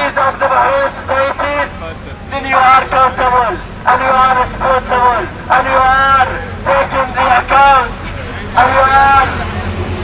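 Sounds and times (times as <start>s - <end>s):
man speaking through megaphone: 0.0s - 9.8s.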